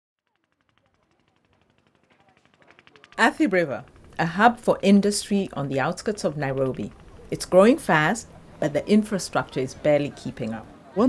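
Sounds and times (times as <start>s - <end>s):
faint rapid ticking: 0.2s - 10.8s.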